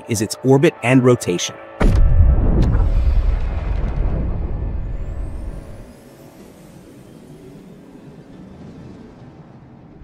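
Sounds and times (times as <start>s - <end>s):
airy whooshing drone: 0.0s - 10.0s
deep rumbling boom: 1.8s - 5.5s.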